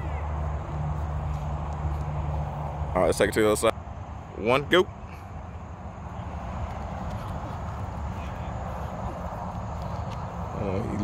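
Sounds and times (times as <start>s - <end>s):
low rumble and hiss outdoors: 0.0s - 11.0s.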